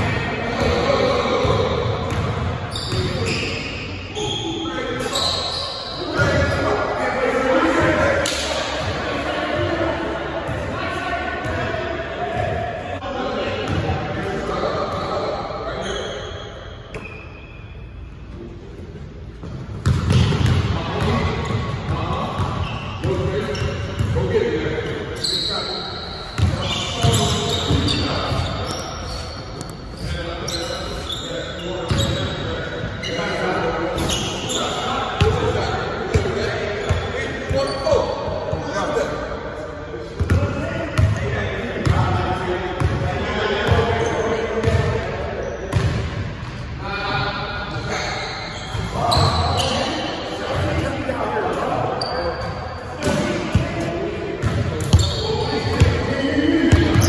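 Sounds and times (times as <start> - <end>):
players calling out: 23.6 - 38.1.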